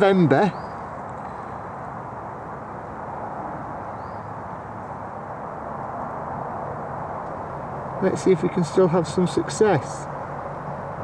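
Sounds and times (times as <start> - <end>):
outdoor background rush: 0.0 - 11.0
faint high chirp: 0.4 - 1.6, 3.9 - 4.4.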